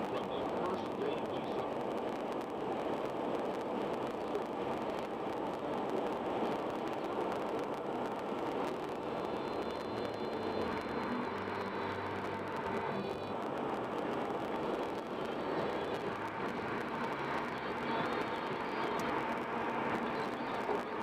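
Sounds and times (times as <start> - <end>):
car engine hum: 0.0 - 21.0
road and tyre noise: 0.0 - 21.0.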